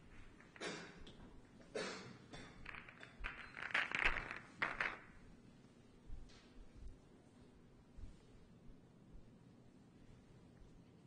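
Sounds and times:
pool balls knocking together: 2.3 - 5.2.

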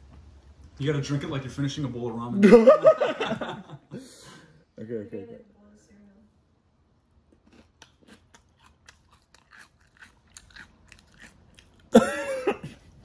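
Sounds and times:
crisp chewing crunches: 7.3 - 12.0.

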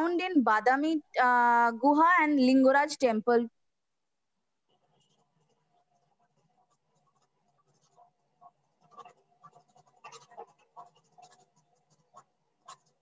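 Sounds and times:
faint scratching and clicking: 4.6 - 13.0.

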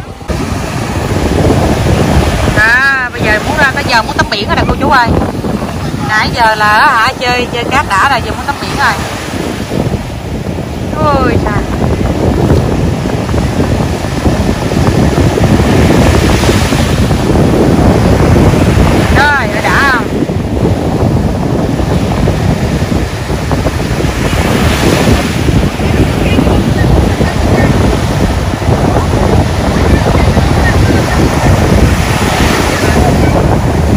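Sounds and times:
ocean surf breaking: 0.0 - 33.9
wind rumbling on microphone: 0.0 - 33.9.

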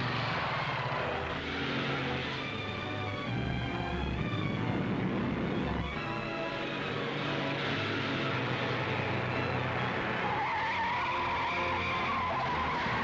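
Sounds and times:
car engine running: 0.0 - 10.4
tyres squealing: 9.4 - 13.0.

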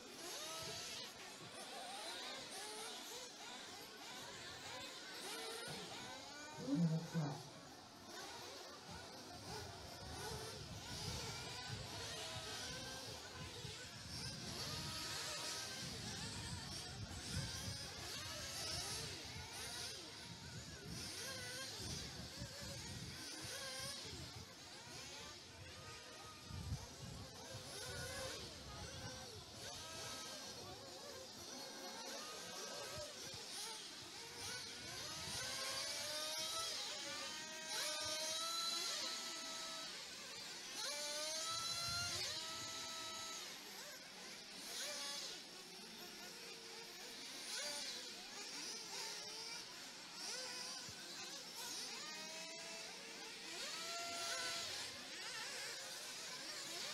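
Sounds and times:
rc car motors whining: 0.0 - 56.9.

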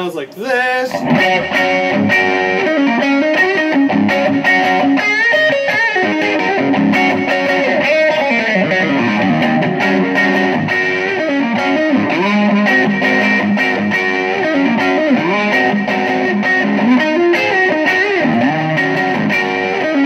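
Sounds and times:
distorted electric guitar licks: 0.2 - 20.0.

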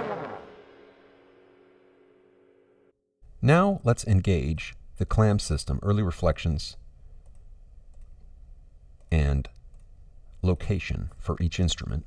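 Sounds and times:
trombone chord: 0.0 - 1.9.

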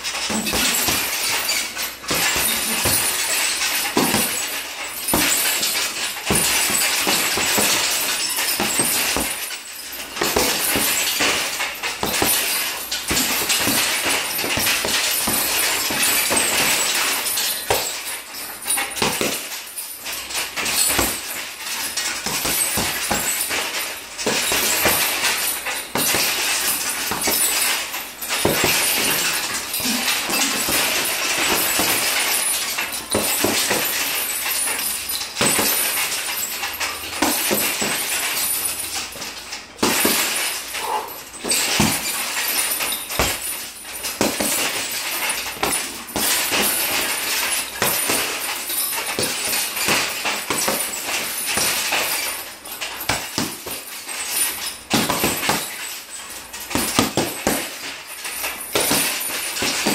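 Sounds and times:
chain jingling and rattling: 0.0 - 59.9
punches thudding into heavy bag: 4.0 - 9.5, 10.1 - 17.1, 22.2 - 32.3, 39.8 - 48.4, 54.9 - 55.8, 56.7 - 57.8.

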